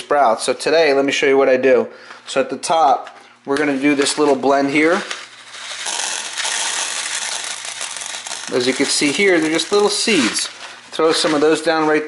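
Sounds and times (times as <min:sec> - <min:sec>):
seeds pattering onto plastic tray: 0:06.0 - 0:10.5.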